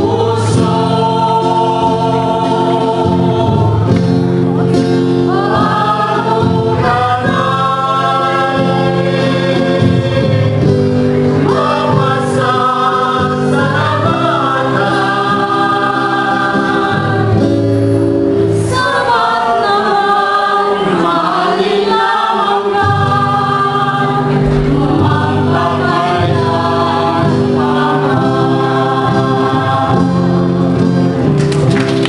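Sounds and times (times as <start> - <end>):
mixed choir singing: 0.0 - 31.1
acoustic guitar: 0.0 - 32.0.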